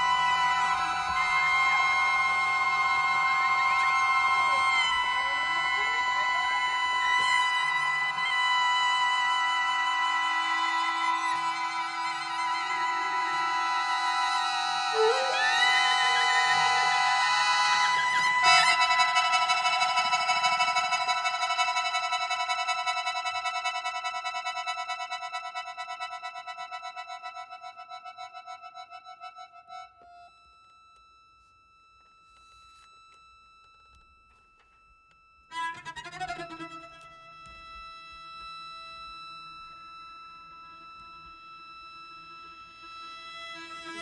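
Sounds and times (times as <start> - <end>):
chamber music sustained chords: 0.0 - 27.8.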